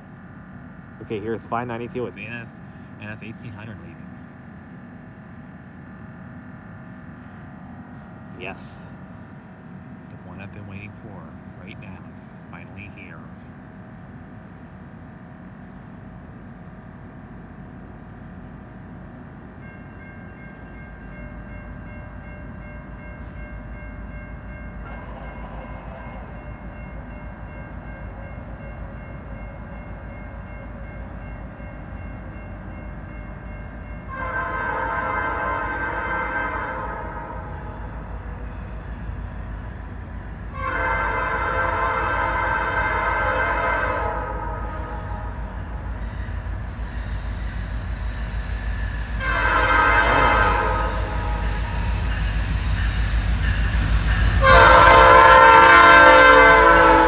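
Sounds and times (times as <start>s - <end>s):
diesel locomotive rumble: 0.0s - 57.0s
train horn blasts: 34.1s - 37.8s, 40.5s - 45.5s, 49.2s - 57.0s.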